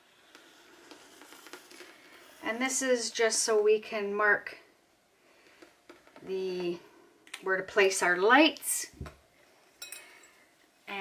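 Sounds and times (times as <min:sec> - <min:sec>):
marker scratching on canvas: 0:00.0 - 0:03.0.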